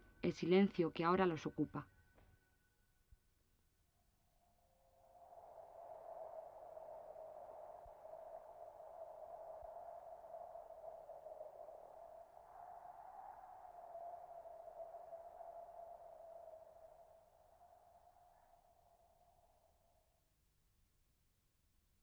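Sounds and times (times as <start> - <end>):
faint wavering drone: 4.3 - 20.2.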